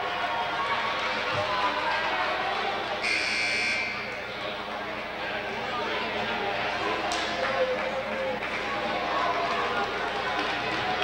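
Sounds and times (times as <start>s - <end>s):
murmur of crowd voices: 0.0s - 11.0s
scoreboard buzzer: 3.0s - 4.0s.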